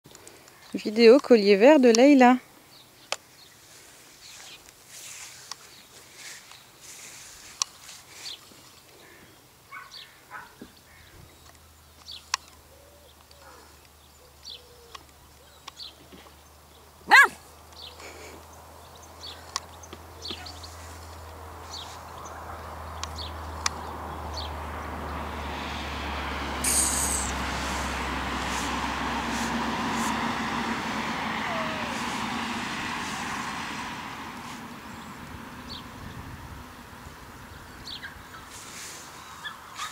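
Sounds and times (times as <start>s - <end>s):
distant engine hum: 3.8s - 39.9s
puppy yipping: 17.1s - 17.4s, 31.4s - 32.2s, 39.4s - 39.9s.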